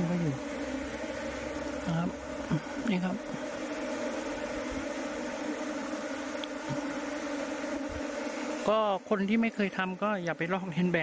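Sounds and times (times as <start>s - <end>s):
swarm of bees buzzing: 0.0s - 11.0s.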